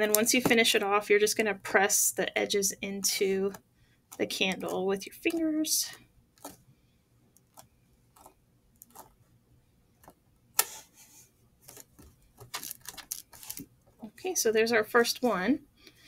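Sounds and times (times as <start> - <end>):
small clicks and rustles: 11.6 - 14.0.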